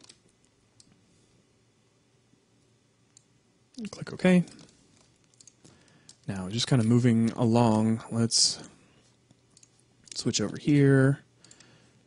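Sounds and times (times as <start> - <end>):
computer mouse clicks: 0.0 - 1.0, 3.1 - 7.9, 9.3 - 10.6, 11.4 - 11.7.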